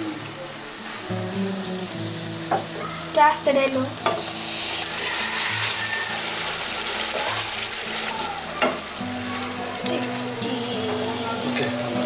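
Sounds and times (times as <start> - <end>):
chicken sizzling in hot oil: 0.0 - 12.0.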